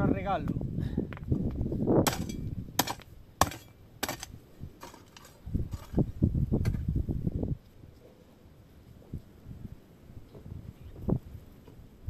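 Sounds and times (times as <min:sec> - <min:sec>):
wind buffeting microphone: 0:00.0 - 0:03.4, 0:04.1 - 0:07.7, 0:09.0 - 0:12.0
sharp knocks on wooden stake: 0:02.0 - 0:05.0.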